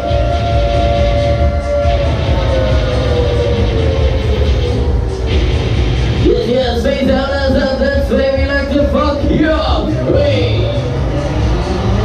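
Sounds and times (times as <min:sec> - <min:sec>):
heavy low rumble: 0:00.0 - 0:12.0.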